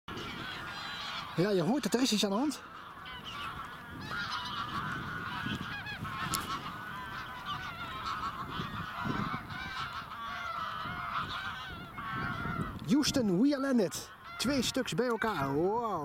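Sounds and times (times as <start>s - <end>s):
flock of waterbirds calling: 0.1s - 16.0s.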